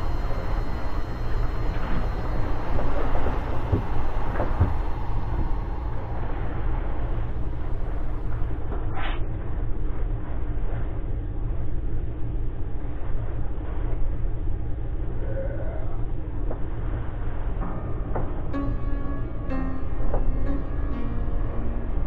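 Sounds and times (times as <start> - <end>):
low rumble: 0.0 - 22.0.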